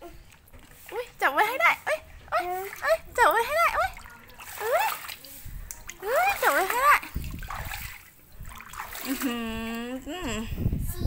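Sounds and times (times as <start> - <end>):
water splashing: 0.0 - 9.9.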